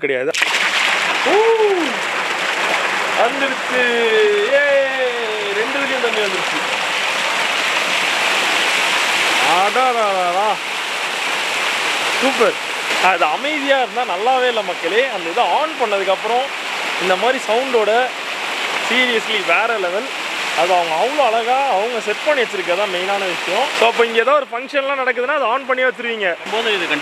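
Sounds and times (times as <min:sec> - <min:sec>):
people talking: 0:00.0 - 0:00.4, 0:01.2 - 0:02.0, 0:03.2 - 0:06.7, 0:09.4 - 0:10.6, 0:12.2 - 0:18.1, 0:18.9 - 0:27.0
fountain water splashing: 0:00.3 - 0:27.0.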